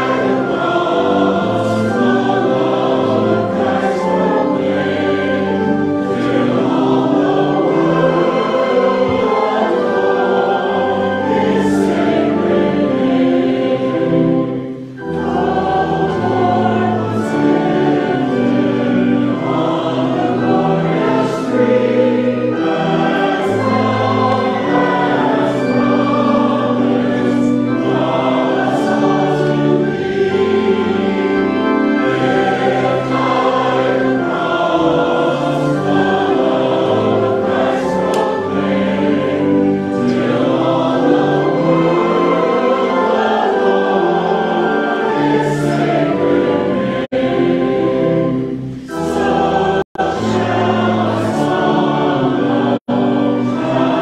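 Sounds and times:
choir singing held chords: 0.0 - 54.0.

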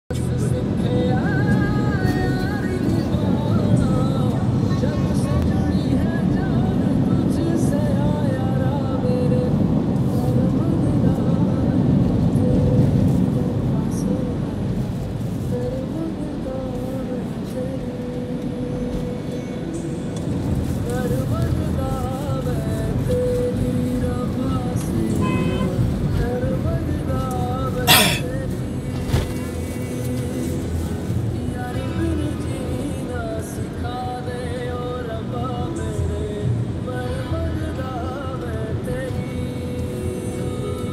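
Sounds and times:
car engine and tyre rumble: 0.1 - 40.9
music playing: 27.4 - 28.4
person talking: 27.9 - 28.3.

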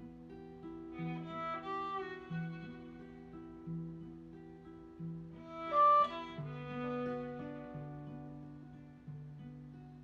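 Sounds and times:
acoustic guitar: 0.0 - 10.0
fiddle melody: 0.9 - 3.3, 5.4 - 8.4.

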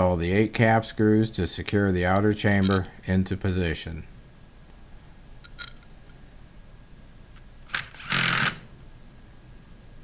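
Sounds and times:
cordless power driver spinning: 7.7 - 8.7.

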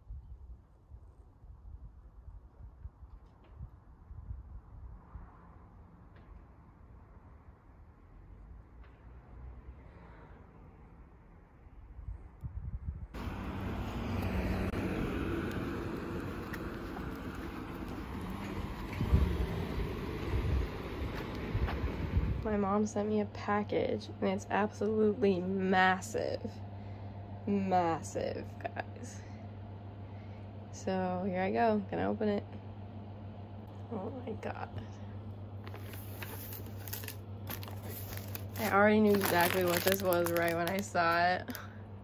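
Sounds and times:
faint street ambience: 0.1 - 42.0
wind buffeting microphone: 12.0 - 22.7
packaging crinkling and rustling: 35.6 - 41.2.

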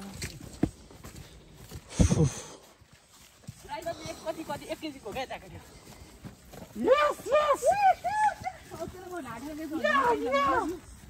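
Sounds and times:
footstep on dirt trail: 0.0 - 11.0
people talking: 6.8 - 10.8.

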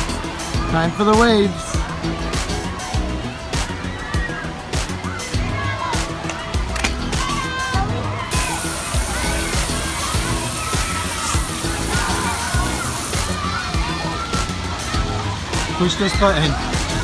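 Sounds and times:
background music: 0.0 - 17.0
water jet spraying onto deck: 8.3 - 17.0.

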